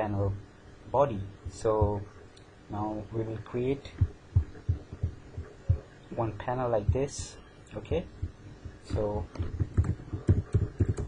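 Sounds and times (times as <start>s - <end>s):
soft low thumps: 1.1s - 2.2s, 3.4s - 11.0s.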